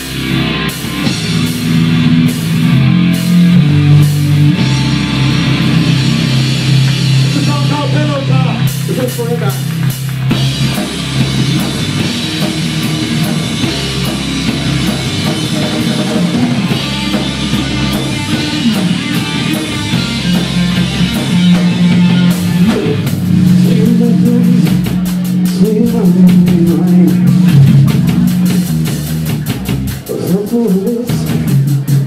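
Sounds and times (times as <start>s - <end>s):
live rock band playing: 0.0s - 32.0s.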